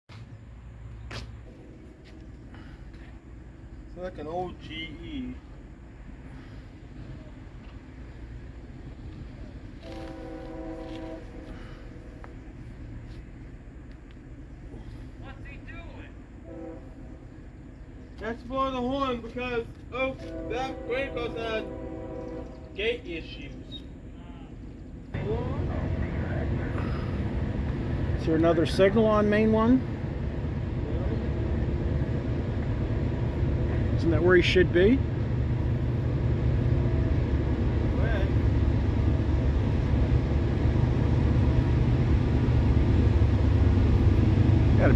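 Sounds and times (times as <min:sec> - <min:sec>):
distant locomotive horn chord: 0:01.4 - 0:03.8, 0:09.6 - 0:13.2, 0:14.8 - 0:17.8, 0:19.9 - 0:23.8
low rumble: 0:19.6 - 0:44.9.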